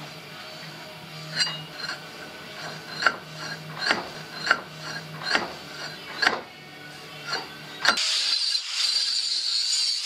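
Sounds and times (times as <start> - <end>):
hand tool scraping steel: 1.2 - 6.5, 7.2 - 10.0.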